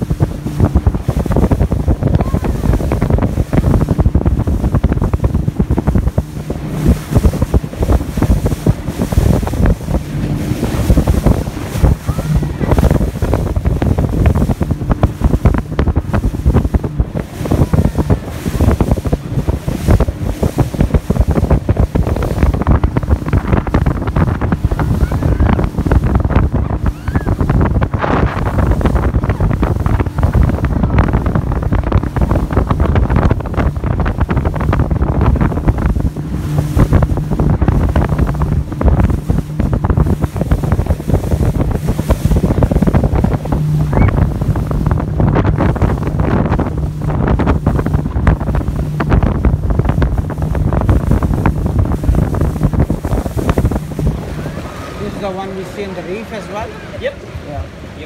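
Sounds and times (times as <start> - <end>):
boat engine humming: 0.0 - 58.0
water rushing along hull: 0.0 - 58.0
wind buffeting microphone: 0.0 - 58.0.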